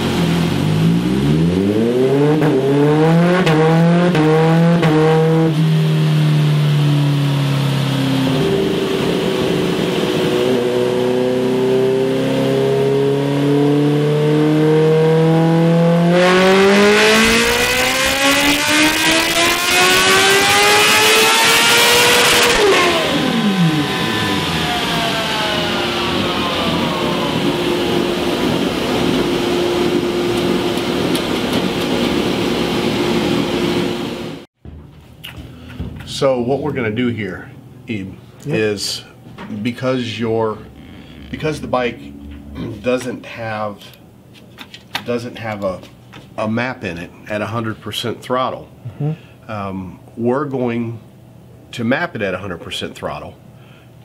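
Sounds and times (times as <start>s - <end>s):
motorcycle engine revving on dyno: 0.0s - 34.5s.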